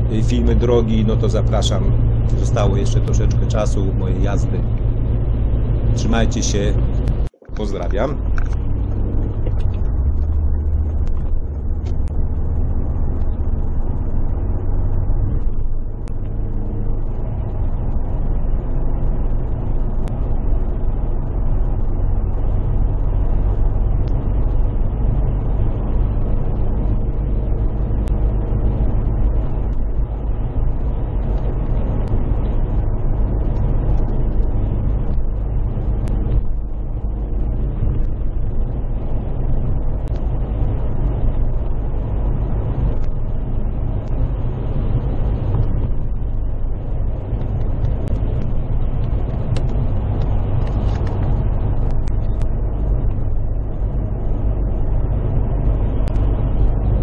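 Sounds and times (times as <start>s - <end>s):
engine drone: 0.0s - 57.0s
road and tyre rumble: 0.0s - 57.0s.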